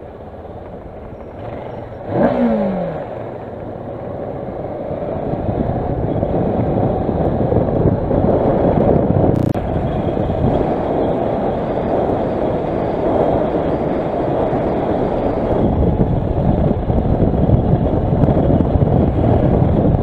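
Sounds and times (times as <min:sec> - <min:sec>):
road noise: 0:00.0 - 0:20.0
wind noise: 0:00.0 - 0:20.0
motorcycle engine revving: 0:00.4 - 0:20.0.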